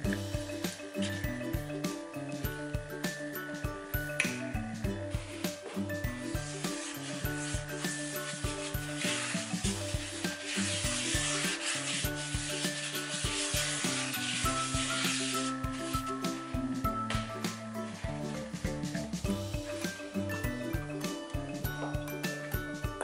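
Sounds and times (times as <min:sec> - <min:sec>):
music with plucked notes: 0:00.0 - 0:23.0
pad rubbing frying pan: 0:05.2 - 0:18.4.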